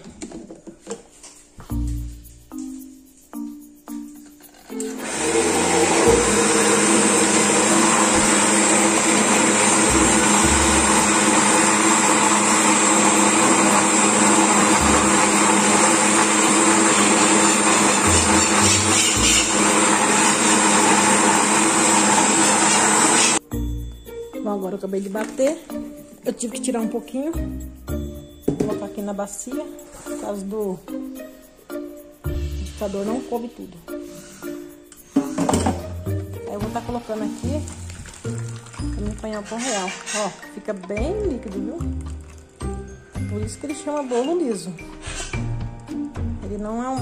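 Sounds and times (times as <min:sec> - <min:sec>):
electric blender running: 0:04.8 - 0:23.4.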